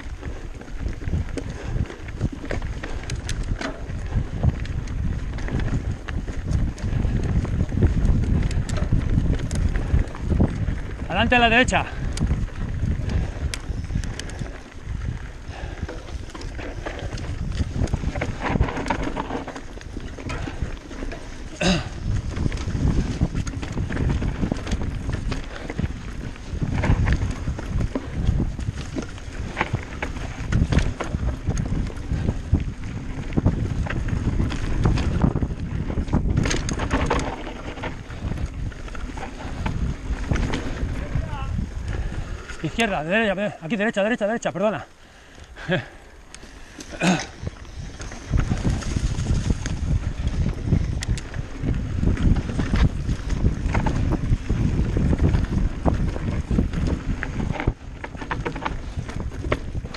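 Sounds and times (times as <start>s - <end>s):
bike clicks and rattles: 0.0s - 59.9s
bike tyres rumbling over dirt: 0.0s - 59.9s
wind buffeting microphone: 0.0s - 59.9s.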